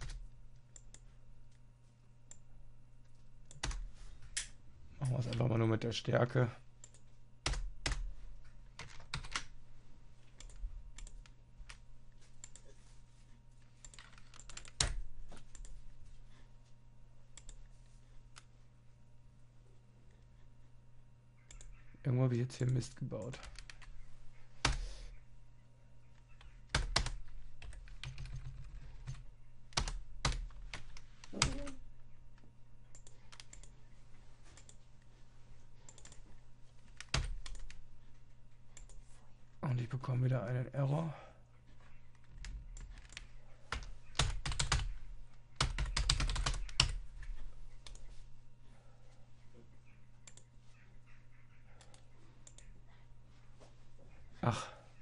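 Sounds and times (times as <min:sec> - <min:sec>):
faint low hum: 0:00.0 - 0:55.0
computer keyboard clicks: 0:13.8 - 0:15.7, 0:35.9 - 0:36.2.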